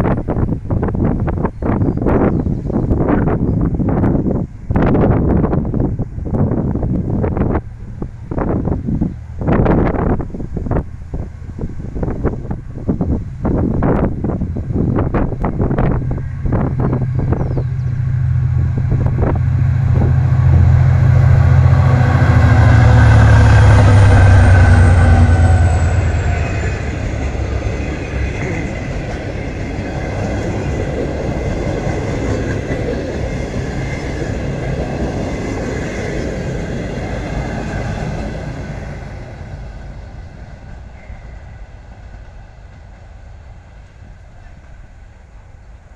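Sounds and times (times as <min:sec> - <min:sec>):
diesel locomotive engine passing: 0:00.0 - 0:45.9
train coaches rolling on rails: 0:00.0 - 0:45.9
wind gusts on microphone: 0:00.0 - 0:45.9.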